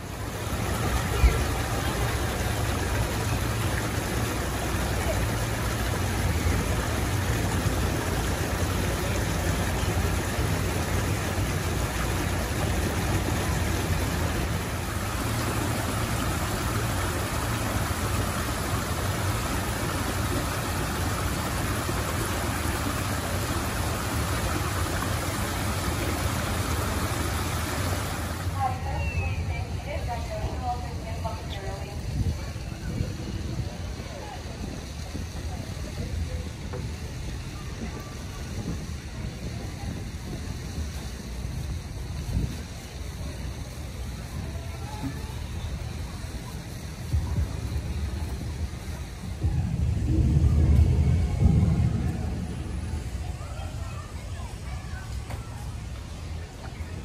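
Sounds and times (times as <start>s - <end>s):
stream running over stones: 0.0s - 57.0s.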